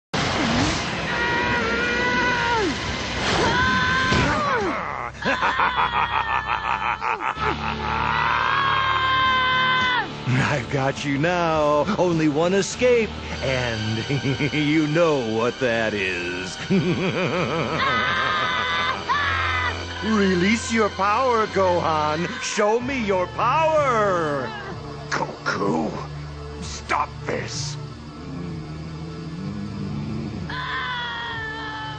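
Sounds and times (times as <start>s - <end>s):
rushing roar: 0.2s - 4.8s, 27.7s - 31.9s
background music: 0.2s - 31.9s.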